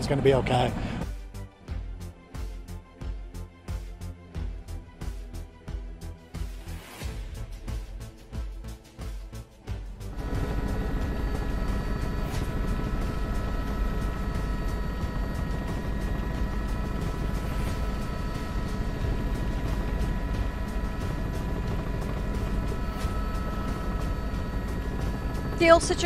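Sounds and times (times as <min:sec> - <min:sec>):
helicopter rotor rumble: 0:00.0 - 0:01.1, 0:08.0 - 0:26.0
turbine whine: 0:00.0 - 0:01.4, 0:09.3 - 0:26.0.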